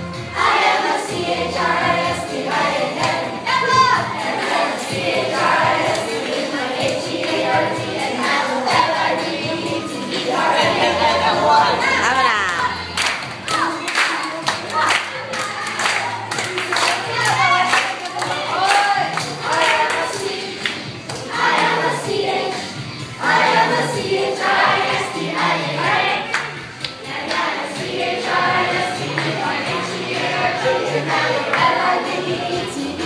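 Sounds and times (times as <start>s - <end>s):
upbeat song with singing: 0.0s - 33.0s
people clapping in rhythm: 0.3s - 9.5s, 12.0s - 33.0s.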